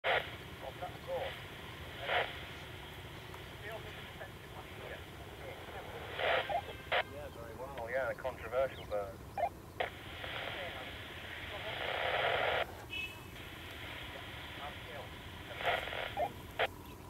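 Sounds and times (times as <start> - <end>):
low background noise: 0.0 - 17.0.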